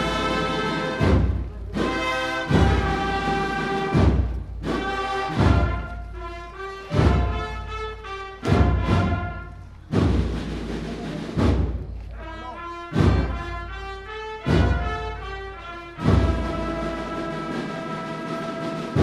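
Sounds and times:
heavy bass drum beat: 0:00.0 - 0:05.9
sustained brass melody: 0:00.0 - 0:09.8, 0:12.1 - 0:19.0.

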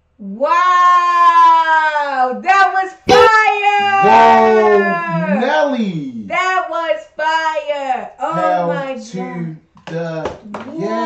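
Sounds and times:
person's high-pitched excited cry: 0:03.1 - 0:05.5.

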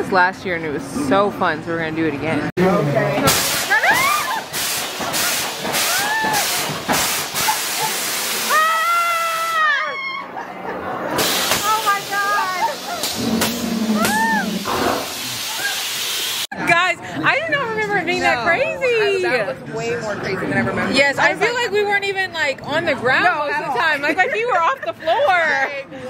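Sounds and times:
riders crying out: 0:11.7 - 0:15.9.

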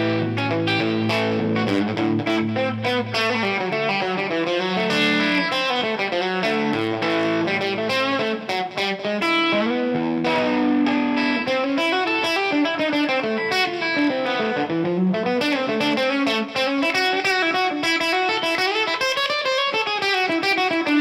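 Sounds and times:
electric guitar chicken-picking: 0:00.0 - 0:21.0.

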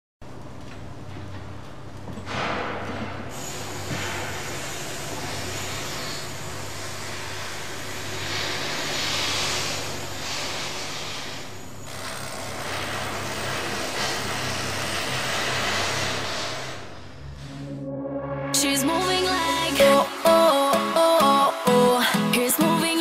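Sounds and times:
loud rushing hiss: 0:18.6 - 0:21.7.

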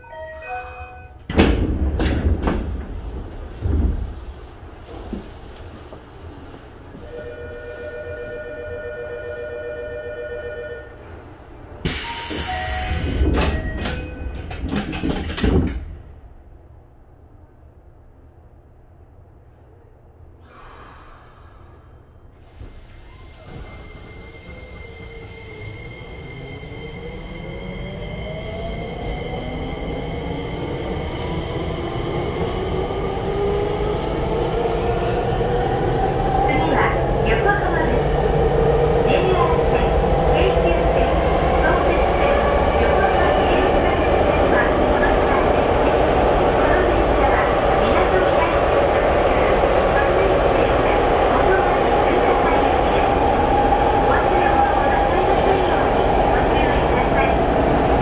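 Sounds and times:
rail clicks: 0:11.8 - 0:16.0
train running noise: 0:11.8 - 0:16.0, 0:22.4 - 0:58.0.

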